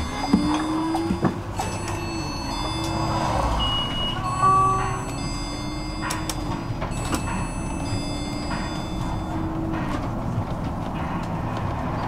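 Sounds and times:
short electronic beeps: 0:00.0 - 0:09.6
bus body rattling: 0:00.0 - 0:12.0
bus engine humming: 0:00.0 - 0:12.0.

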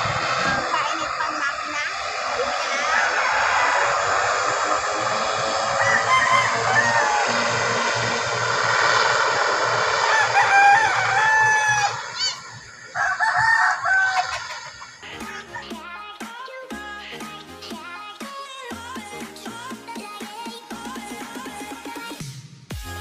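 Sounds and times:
turboprop engines taxiing: 0:00.0 - 0:22.2
rooster crowing: 0:02.2 - 0:08.4, 0:09.8 - 0:15.0.

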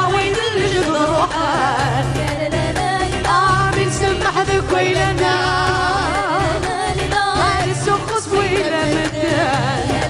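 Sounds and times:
band with drums and bass: 0:00.0 - 0:10.0
woman singing into microphone: 0:00.0 - 0:10.0.

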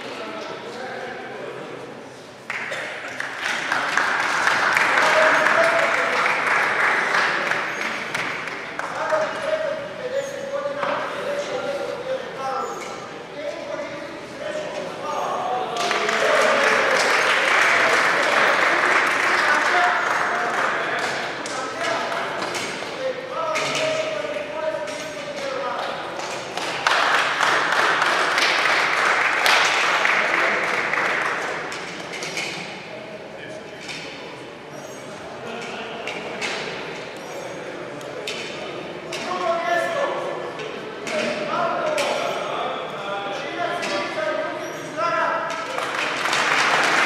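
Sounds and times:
applause echoing in hall: 0:02.4 - 0:09.9, 0:15.6 - 0:32.5, 0:45.4 - 0:47.0
man announcing: 0:04.8 - 0:07.1, 0:08.8 - 0:25.9.

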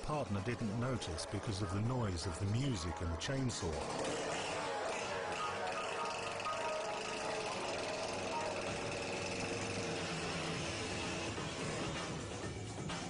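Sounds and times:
music playing: 0:00.0 - 0:13.0
chainsaw running: 0:03.6 - 0:12.4.

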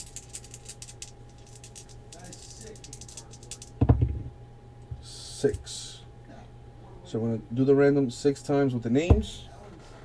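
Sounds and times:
dice rattling in a hand: 0:00.0 - 0:03.8.

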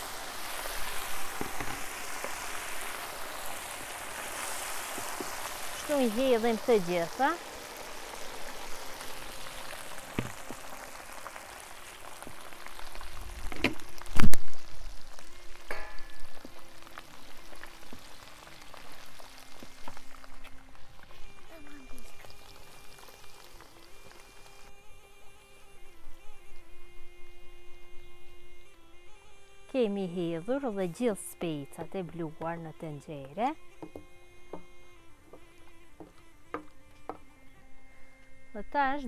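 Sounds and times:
hot oil sizzling and spattering: 0:00.0 - 0:29.7.

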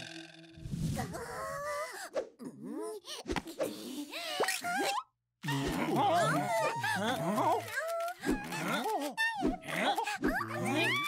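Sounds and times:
wordless cartoon vocalizations: 0:00.9 - 0:11.0.

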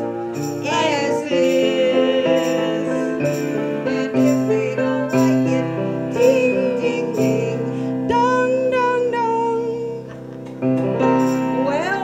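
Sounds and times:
woman singing: 0:00.0 - 0:10.2, 0:11.6 - 0:12.0
instrumental accompaniment chords: 0:00.0 - 0:12.0.

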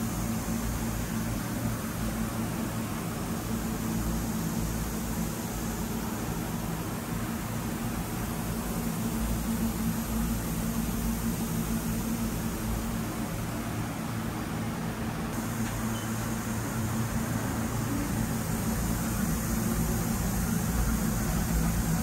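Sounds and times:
idle machine humming: 0:00.0 - 0:22.0.

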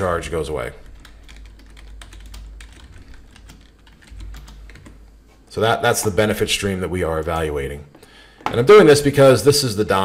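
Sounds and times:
computer keyboard typing: 0:00.7 - 0:05.0.

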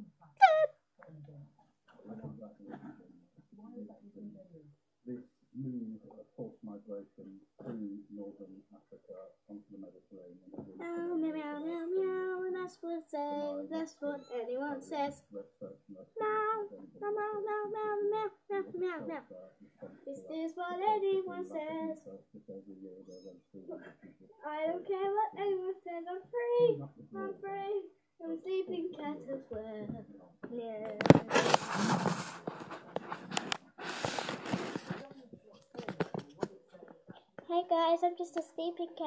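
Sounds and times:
child singing: 0:10.8 - 0:15.4, 0:16.2 - 0:19.4, 0:20.1 - 0:22.1, 0:24.4 - 0:31.2, 0:37.5 - 0:39.0.

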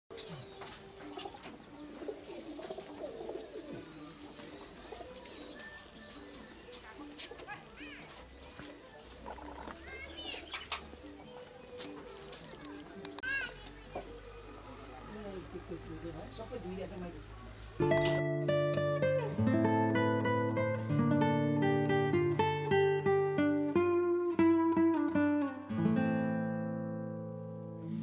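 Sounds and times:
doves cooing: 0:00.1 - 0:07.8, 0:08.6 - 0:13.1
small birds chirping: 0:00.1 - 0:17.7.

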